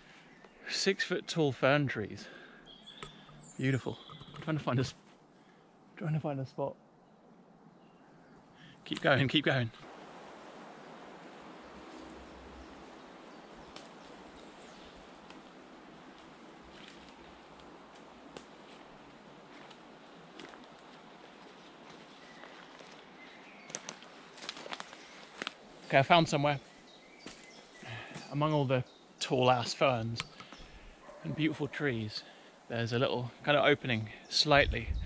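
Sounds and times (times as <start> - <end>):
soft woodland hiss: 0.0 - 4.0, 7.8 - 35.0
footsteps crunching through undergrowth: 13.4 - 25.9, 26.6 - 28.3
faint twig snaps: 13.7 - 14.0, 15.2 - 15.5, 16.1 - 18.6, 23.7 - 25.6.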